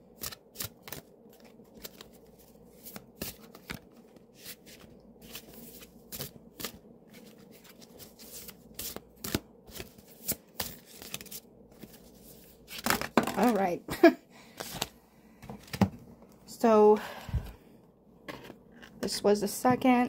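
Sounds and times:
cards being shuffled: 0:00.2 - 0:13.7, 0:14.6 - 0:15.8.

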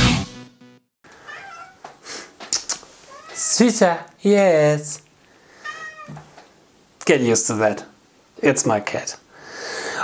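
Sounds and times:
cat meowing: 0:01.2 - 0:01.8, 0:03.1 - 0:03.4, 0:05.6 - 0:06.2.

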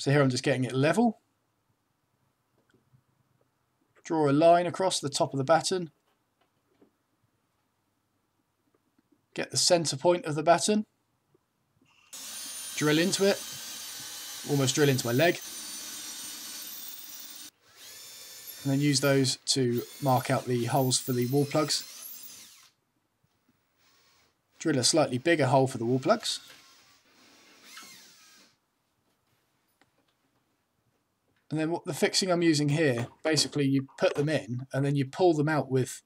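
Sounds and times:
cordless drill boring into wood: 0:12.1 - 0:22.8, 0:23.8 - 0:25.0, 0:25.8 - 0:28.6.

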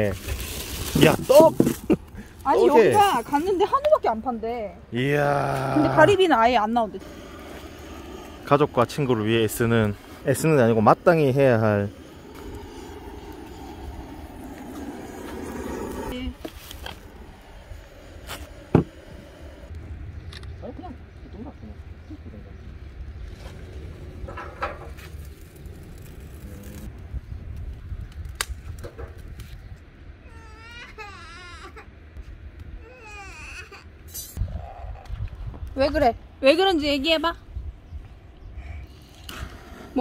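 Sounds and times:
butane torch flame blowing: 0:05.0 - 0:19.8, 0:23.5 - 0:27.0
toddler crying: 0:30.3 - 0:31.9, 0:32.8 - 0:33.9.

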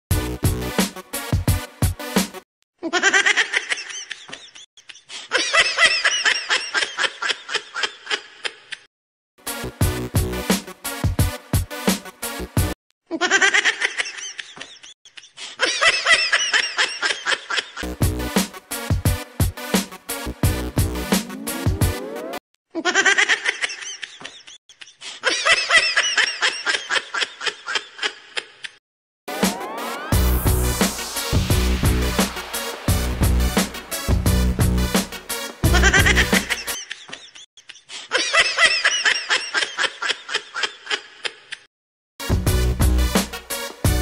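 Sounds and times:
music with heavy bass beat: 0:00.1 - 0:02.3, 0:09.6 - 0:10.6, 0:17.8 - 0:22.4, 0:29.3 - 0:36.8, 0:42.2 - 0:44.0
high-pitched giggling laughter: 0:02.8 - 0:08.9, 0:13.1 - 0:17.8, 0:22.7 - 0:28.8, 0:35.6 - 0:41.7
high-pitched giggling: 0:35.6 - 0:41.7.

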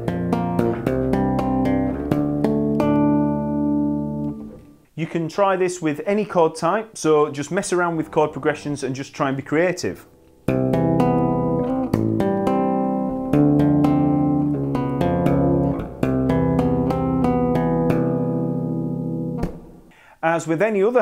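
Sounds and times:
bass guitar tapped harmonic chords: 0:00.0 - 0:05.0, 0:10.1 - 0:19.9.

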